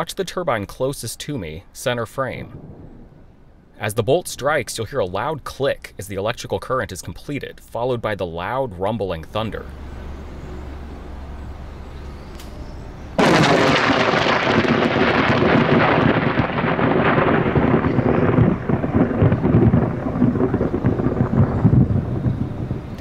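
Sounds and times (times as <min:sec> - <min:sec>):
loud rumbling thunder: 0:02.4 - 0:03.8, 0:13.2 - 0:23.0
lightning click: 0:13.2 - 0:23.0.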